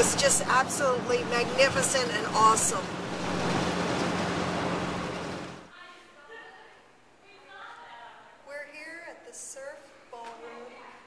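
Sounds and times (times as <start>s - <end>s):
low engine hum: 0.0s - 5.7s.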